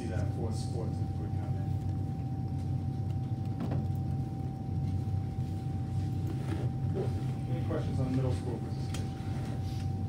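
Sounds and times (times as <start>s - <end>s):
machinery humming: 0.0s - 10.0s.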